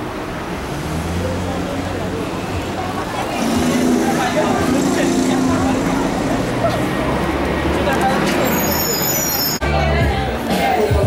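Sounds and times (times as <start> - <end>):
vehicle engine rumble: 0.0 - 10.2
indistinct voices: 0.0 - 11.0.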